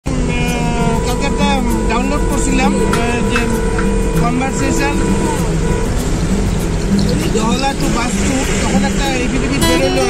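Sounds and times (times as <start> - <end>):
low road rumble: 0.0 - 10.0
background music with held tones: 0.1 - 10.0.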